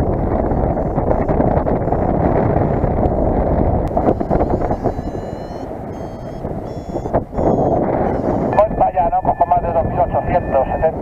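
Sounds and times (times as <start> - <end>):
short high-pitched beeps: 0.0 - 9.5
wind rushing over microphone: 0.0 - 11.0.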